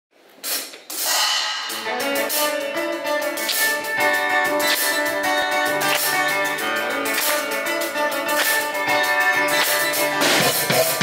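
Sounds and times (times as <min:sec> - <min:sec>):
hissy percussion wash: 0:00.9 - 0:03.7
pitched instrument notes: 0:01.0 - 0:11.0.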